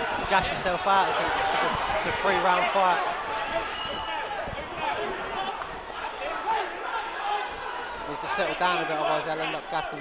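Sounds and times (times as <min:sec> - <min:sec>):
crowd shouting and talking: 0:00.0 - 0:10.0.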